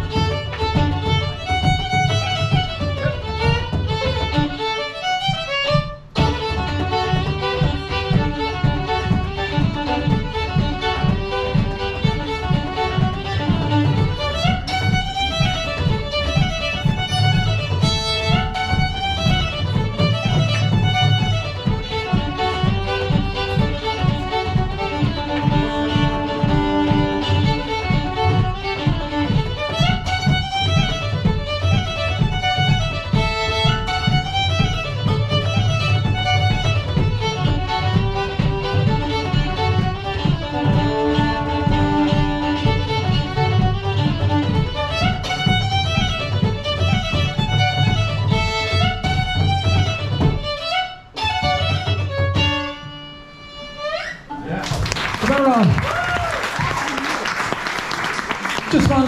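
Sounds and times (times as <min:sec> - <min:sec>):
frame drum beat: 0:00.0 - 0:52.8, 0:54.3 - 0:59.0
fiddle playing dance tune: 0:00.0 - 0:59.0.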